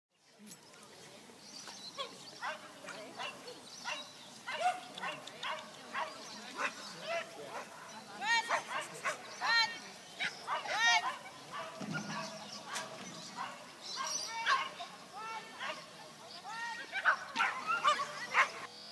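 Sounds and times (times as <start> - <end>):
dog barking and yipping: 17.0 - 18.7.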